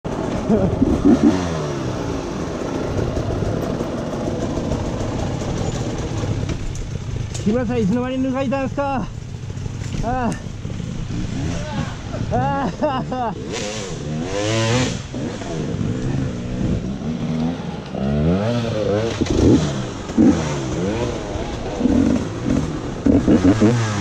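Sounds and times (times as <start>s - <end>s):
motorcycle engine revving: 0.1s - 24.0s.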